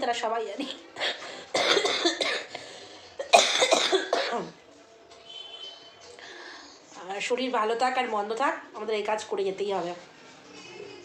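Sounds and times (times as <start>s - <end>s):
woman coughing: 0.6s - 2.6s, 3.2s - 4.6s.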